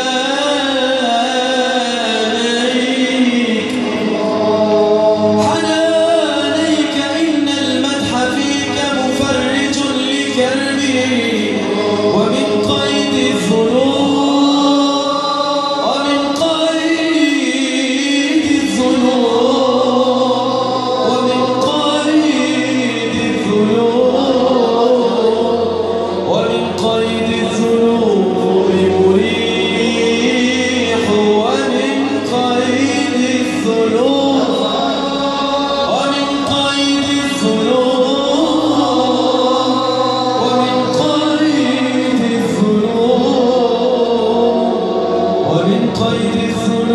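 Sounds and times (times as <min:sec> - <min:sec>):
male choir singing: 0:00.0 - 0:46.9.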